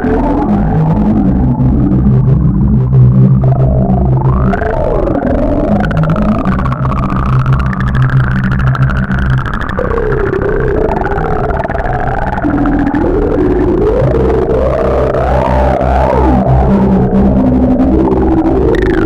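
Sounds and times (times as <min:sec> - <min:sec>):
gliding synthesizer tones: 0:00.0 - 0:19.0
sustained low bass notes: 0:00.0 - 0:19.0.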